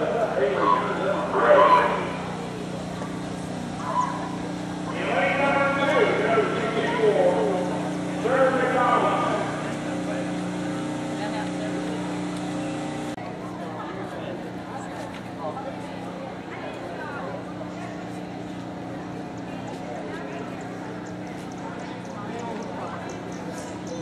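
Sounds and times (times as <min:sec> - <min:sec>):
people talking indistinctly: 0:00.0 - 0:24.0
steady low hum: 0:00.0 - 0:24.0.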